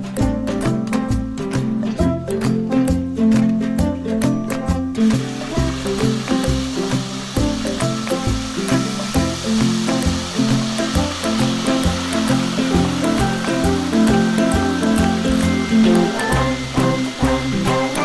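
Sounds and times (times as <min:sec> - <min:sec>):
background music: 0:00.0 - 0:18.0
meat deep-frying in oil: 0:03.2 - 0:18.0.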